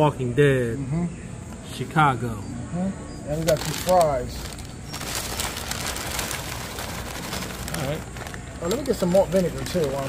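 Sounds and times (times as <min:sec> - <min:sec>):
paper bag crinkling: 0:03.3 - 0:10.0.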